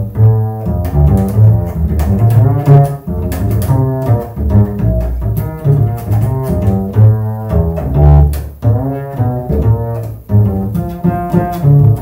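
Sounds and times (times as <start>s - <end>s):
double bass plucked pizzicato: 0.0s - 12.0s.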